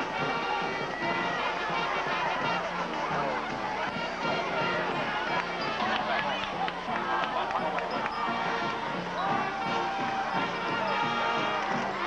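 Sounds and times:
band music: 0:00.0 - 0:12.0
crowd talking and shouting: 0:00.0 - 0:12.0
loud shouts: 0:00.0 - 0:12.0.

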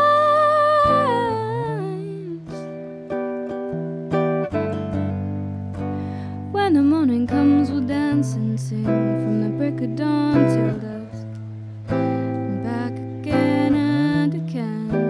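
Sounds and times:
woman singing: 0:00.0 - 0:03.0, 0:06.2 - 0:15.0
electric tenor guitar strumming: 0:00.0 - 0:15.0.

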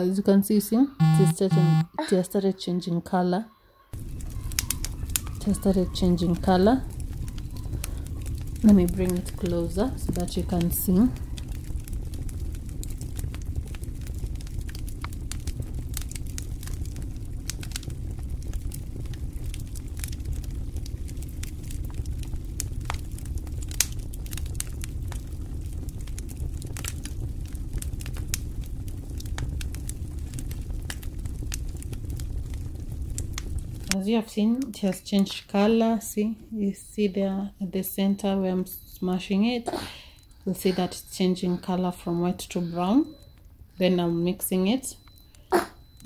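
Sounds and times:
steady low rumble: 0:04.0 - 0:34.6
charcoal crackling: 0:04.0 - 0:46.0.

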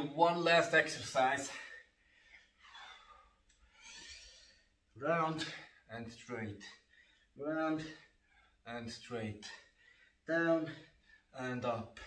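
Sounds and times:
man breathing: 0:01.4 - 0:05.9, 0:06.7 - 0:08.7, 0:09.4 - 0:11.4.

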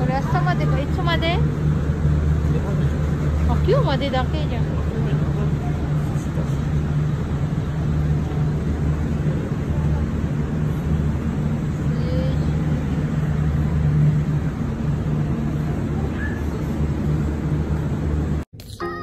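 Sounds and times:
faint voices: 0:00.0 - 0:17.5
low hum of machinery and crowd: 0:00.0 - 0:19.0.

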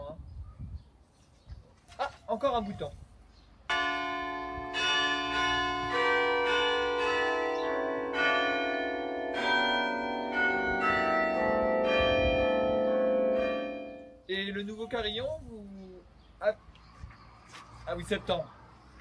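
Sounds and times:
carillon bells playing melody: 0:03.7 - 0:14.3.

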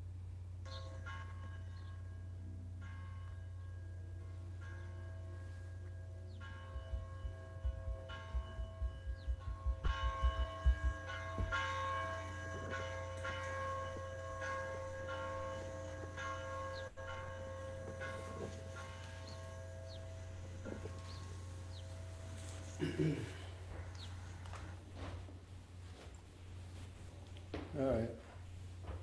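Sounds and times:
low hum: 0:00.0 - 0:29.0
church bells ringing: 0:00.6 - 0:27.2
quick low thumps: 0:06.6 - 0:12.1.

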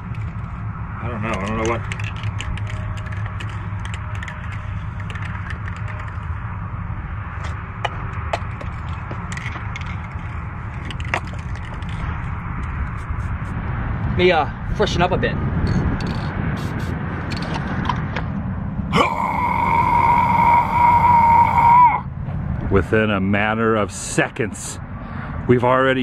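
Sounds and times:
wind buffeting microphone: 0:00.0 - 0:18.9
light clicks and rattles: 0:01.3 - 0:06.3, 0:08.3 - 0:12.9.

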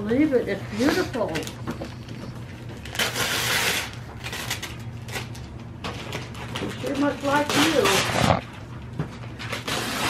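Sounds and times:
wrapping paper tearing and crinkling: 0:02.8 - 0:08.6, 0:09.3 - 0:10.0.

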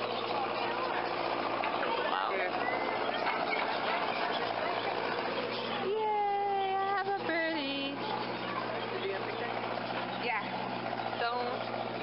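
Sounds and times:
budgerigars chattering: 0:00.0 - 0:05.9, 0:08.0 - 0:12.0
steady low hum: 0:00.0 - 0:12.0.

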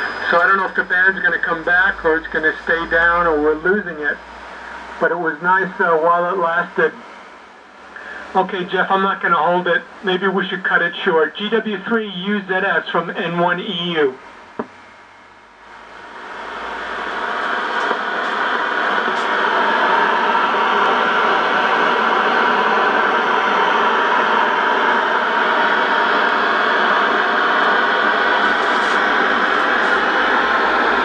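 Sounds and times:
radio static hiss: 0:00.0 - 0:07.2, 0:07.8 - 0:14.8, 0:15.6 - 0:20.0, 0:27.0 - 0:31.0.

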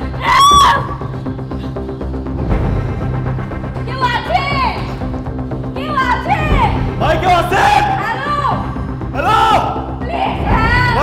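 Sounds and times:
background music: 0:00.0 - 0:11.0
woman squealing: 0:00.1 - 0:01.1.

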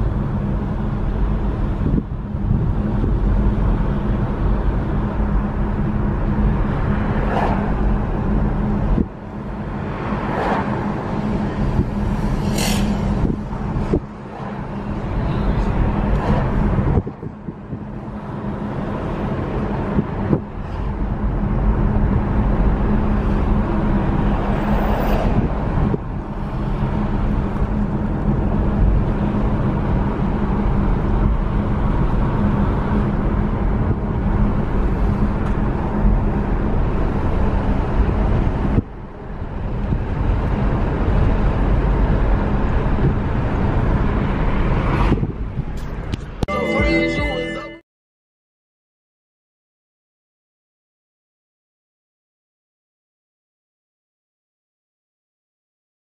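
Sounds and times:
road and wind noise in car: 0:00.0 - 0:47.8.

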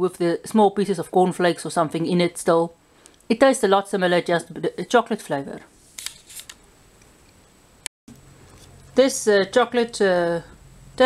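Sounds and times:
sharp click: 0:06.0 - 0:07.4.

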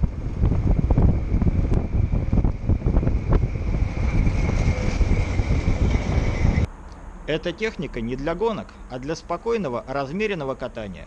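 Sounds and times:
wind buffeting microphone: 0:00.0 - 0:06.7
thin steady high whine: 0:00.0 - 0:08.8
road noise: 0:00.0 - 0:11.0.

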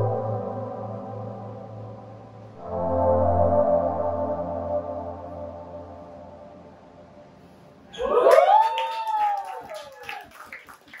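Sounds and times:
audience cheering and whooping: 0:07.9 - 0:11.0
hand claps: 0:08.0 - 0:11.0.

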